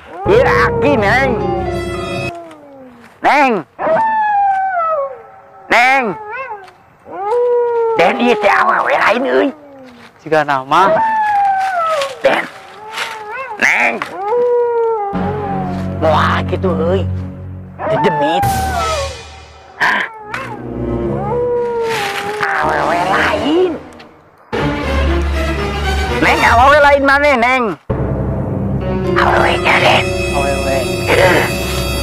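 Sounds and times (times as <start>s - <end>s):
person calling in howl-like tones: 0.0s - 3.2s, 3.8s - 10.1s, 10.7s - 16.6s, 17.8s - 19.2s, 19.8s - 23.9s, 29.2s - 31.6s.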